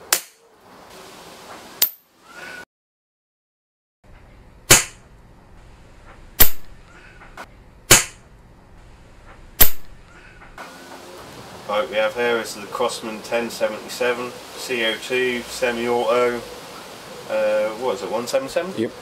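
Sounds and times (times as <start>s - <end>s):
air rifle shots: 4.7s - 5.0s, 6.4s - 6.8s, 7.9s - 8.2s, 9.6s - 10.0s.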